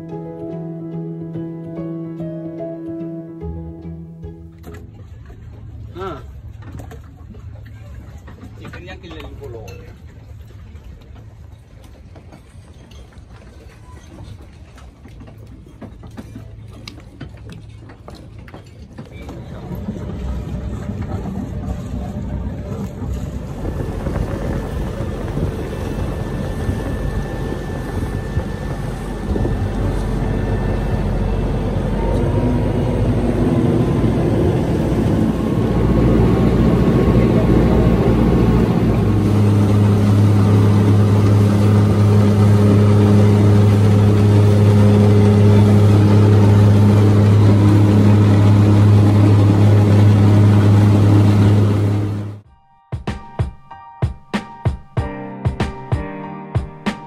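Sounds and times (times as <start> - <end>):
boat engine idling: 0.0 - 52.5
water noise: 0.0 - 52.5
wind: 0.0 - 57.0.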